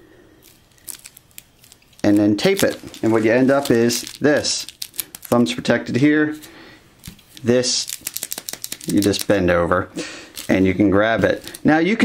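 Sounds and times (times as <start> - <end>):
bubble insulation crinkling: 0.4 - 9.5, 10.2 - 11.7.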